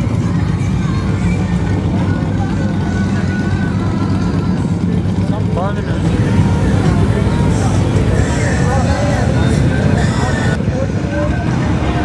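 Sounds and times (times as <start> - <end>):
motorcycles idling: 0.0 - 12.0.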